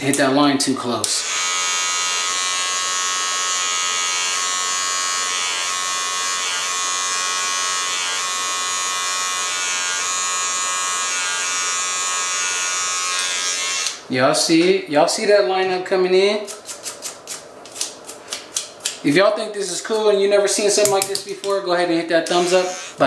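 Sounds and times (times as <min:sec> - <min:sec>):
hair trimmer buzzing: 0:01.2 - 0:14.0, 0:22.3 - 0:23.0.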